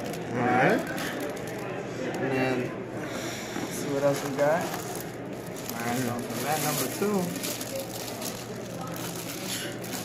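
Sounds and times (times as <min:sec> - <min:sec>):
plastic wrapping crinkling: 0:00.0 - 0:01.8, 0:03.9 - 0:10.0
background chatter: 0:00.0 - 0:10.0.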